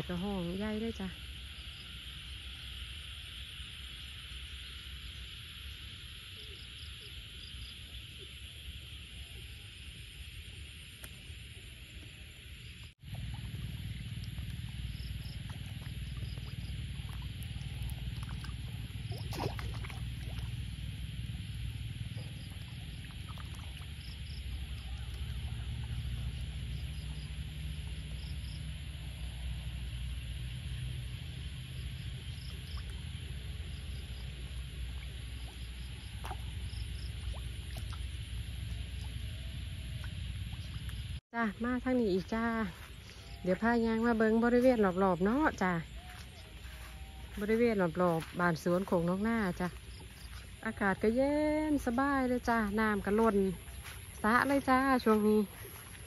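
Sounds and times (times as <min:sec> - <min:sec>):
frogs calling in chorus: 0:38.7 - 0:56.0.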